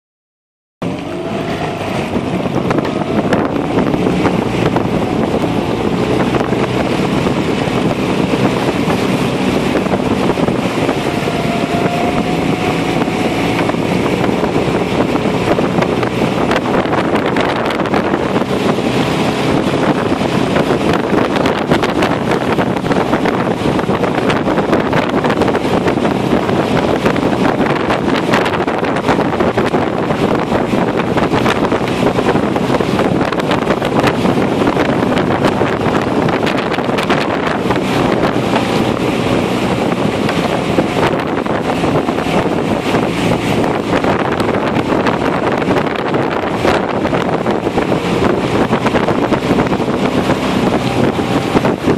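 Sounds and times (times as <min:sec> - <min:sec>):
boat motor running: 0:00.8 - 0:51.9
wind buffeting microphone: 0:00.8 - 0:51.9.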